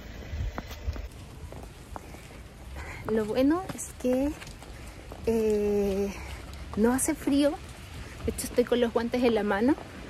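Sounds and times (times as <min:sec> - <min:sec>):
boots walking on snow: 0:00.0 - 0:10.0.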